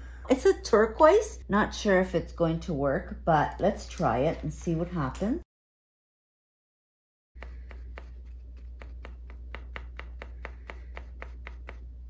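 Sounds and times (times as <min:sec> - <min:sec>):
paintbrush dabbing paint: 0:07.4 - 0:12.0.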